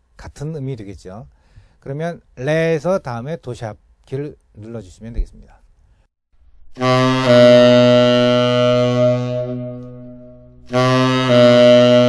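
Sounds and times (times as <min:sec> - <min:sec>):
tenor saxophone notes: 0:06.7 - 0:12.0.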